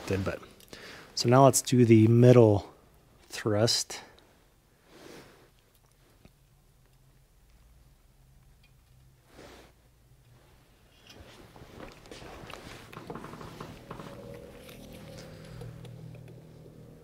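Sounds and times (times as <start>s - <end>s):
small clicks and rustles of tools: 10.2s - 16.6s.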